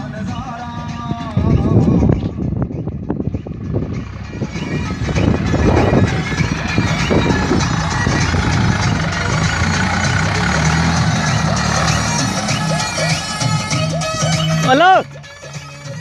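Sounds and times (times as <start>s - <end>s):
music playing: 0.0s - 16.0s
tractor diesel engine running: 0.0s - 16.0s.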